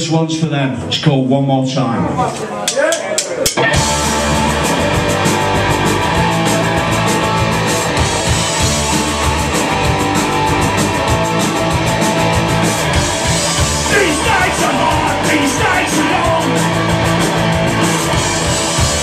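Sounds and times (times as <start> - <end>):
drums: 0.0 - 19.0
bass guitar: 3.4 - 19.0
electric guitar: 3.6 - 19.0.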